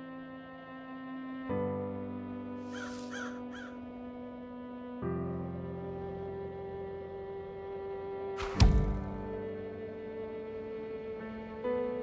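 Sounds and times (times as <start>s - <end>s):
crows cawing: 2.6s - 3.8s.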